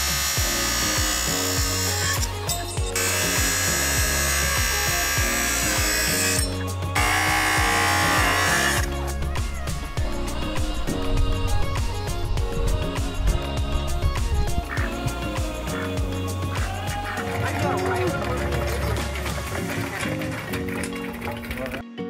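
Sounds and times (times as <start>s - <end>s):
circular saw cutting wood: 0.0s - 8.9s
background music: 0.0s - 22.0s.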